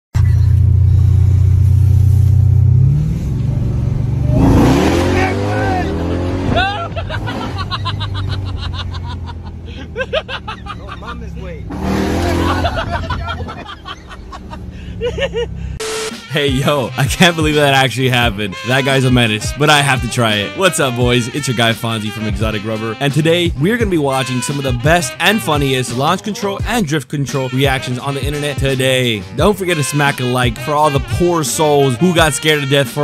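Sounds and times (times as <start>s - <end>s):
car engine pulling hard: 0.2s - 15.8s
passenger yelling: 4.3s - 15.7s.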